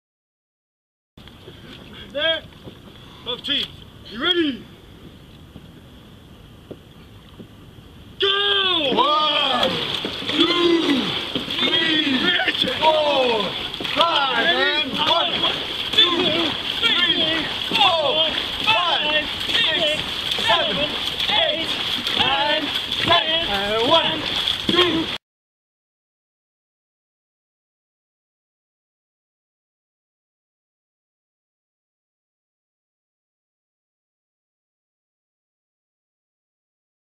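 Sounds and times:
paddle splashes: 1.2s - 4.1s, 4.7s - 25.2s
light wind and water hiss: 1.2s - 25.2s
crew shouting: 8.2s - 25.2s.

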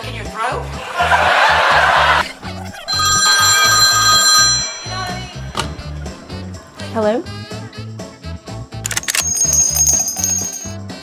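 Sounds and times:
telephone ringing: 2.7s - 6.5s, 8.9s - 10.8s.

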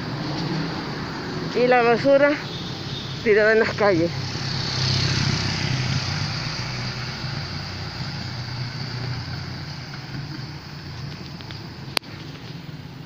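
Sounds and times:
road and wind hiss: 0.0s - 13.0s
vehicle engine running: 3.2s - 13.0s.

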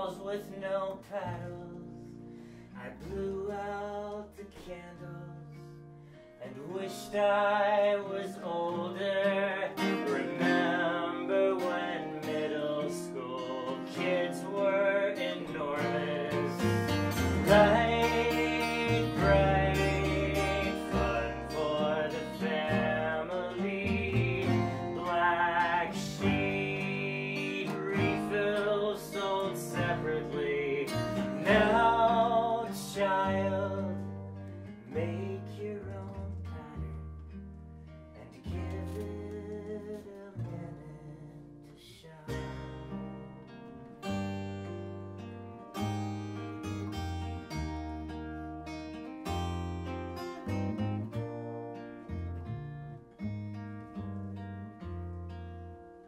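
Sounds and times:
man singing: 0.0s - 2.1s, 2.7s - 5.7s, 6.4s - 34.3s, 34.9s - 37.1s, 38.2s - 42.6s
plucked upright bass: 0.0s - 6.1s, 6.8s - 56.0s
strummed acoustic guitar: 0.0s - 56.0s.

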